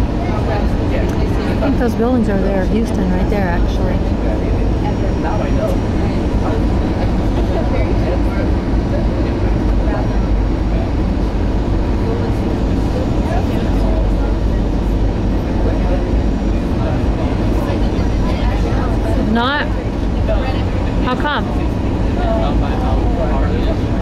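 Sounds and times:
jet engine and airflow in cabin: 0.0s - 24.0s.

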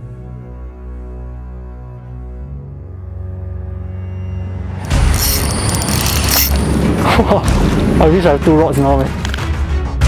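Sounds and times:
fishing reel drag ratcheting: 4.8s - 6.7s.

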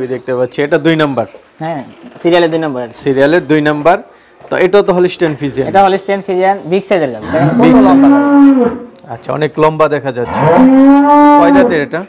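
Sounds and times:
cattle mooing: 7.2s - 9.0s, 10.2s - 11.9s.

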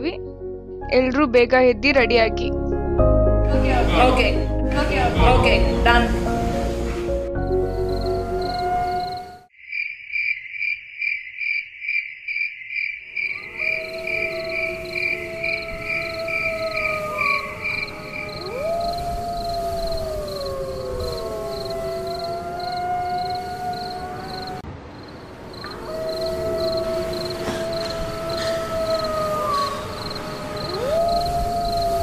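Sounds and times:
crickets chirping: 7.5s - 32.0s.

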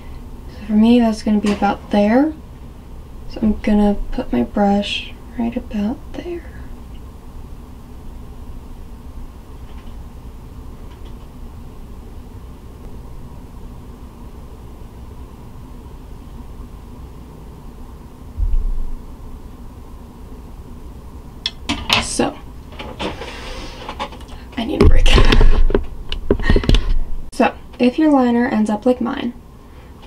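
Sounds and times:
faint hum: 0.0s - 30.0s
dull low thump: 18.4s - 19.1s.

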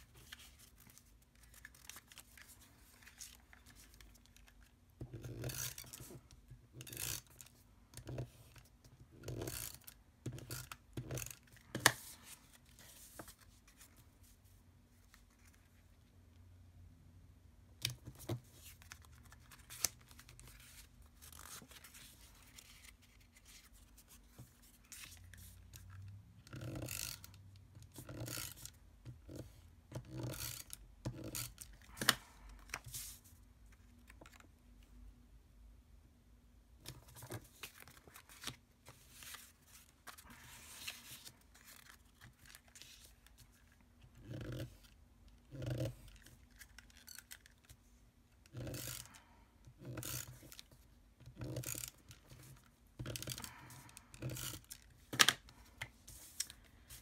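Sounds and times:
card sheets handled: 0.0s - 4.7s, 17.9s - 25.6s, 36.8s - 43.7s.

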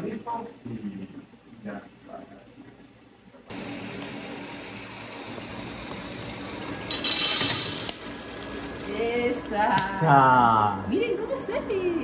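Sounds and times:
coffee roaster whirring: 0.0s - 12.0s.

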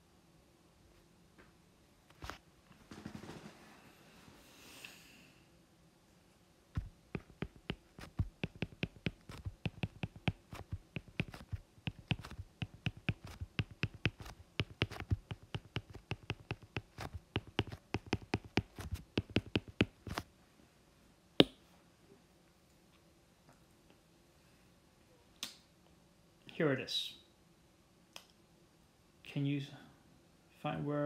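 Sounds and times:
stylus tapping on glass screen: 6.8s - 20.2s.

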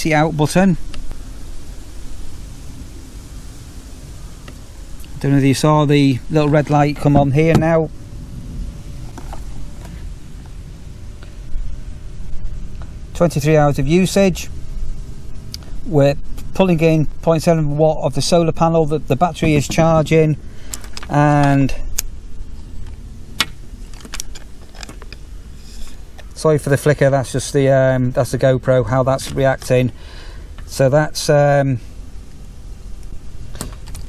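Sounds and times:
outdoor background rumble: 0.0s - 34.0s
microphone handling noise: 3.4s - 13.2s, 19.3s - 26.4s.

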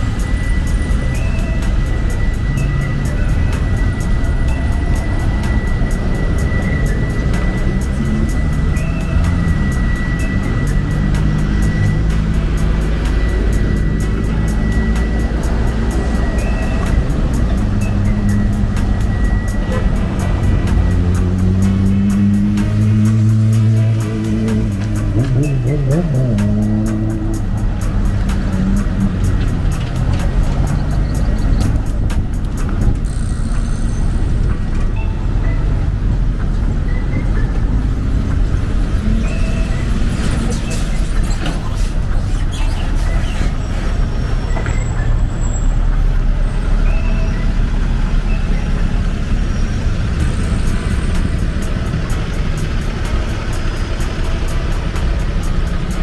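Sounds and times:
cars passing close by: 0.0s - 56.0s
music playing: 0.0s - 56.0s.

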